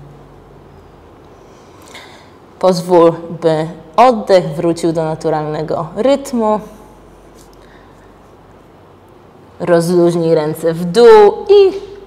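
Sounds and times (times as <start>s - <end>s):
faint low hum: 0.0s - 12.0s
soft intake of breath: 1.3s - 2.5s.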